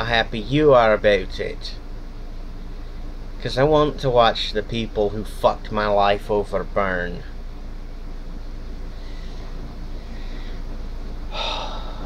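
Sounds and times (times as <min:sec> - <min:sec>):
low background hum: 0:00.0 - 0:12.0
person breathing noisily: 0:08.9 - 0:10.7, 0:11.3 - 0:12.0.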